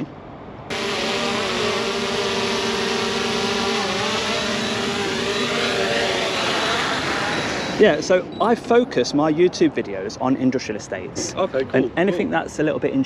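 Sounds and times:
drone propellers buzzing: 0:00.7 - 0:08.1.

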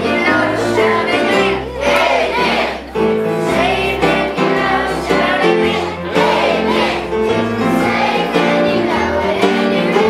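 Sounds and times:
children singing into microphones: 0:00.0 - 0:10.0
instrumental accompaniment with bass: 0:00.0 - 0:10.0.

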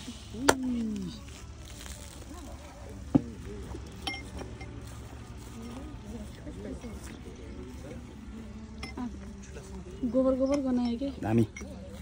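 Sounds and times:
glass clinking: 0:04.0 - 0:04.7.

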